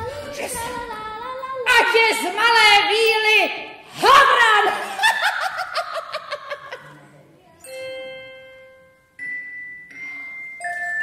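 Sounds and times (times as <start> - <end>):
woman's theatrical cackle: 4.8 - 6.9.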